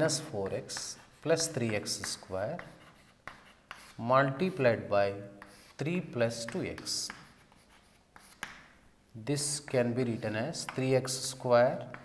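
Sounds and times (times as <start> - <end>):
chalk scratching on blackboard: 0.0 - 8.8, 9.4 - 12.0
chalk taps: 0.0 - 8.8, 9.4 - 12.0.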